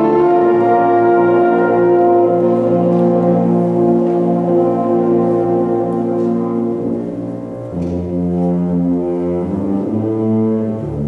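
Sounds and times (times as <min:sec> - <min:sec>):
wind ensemble brass chords: 0:00.0 - 0:11.0.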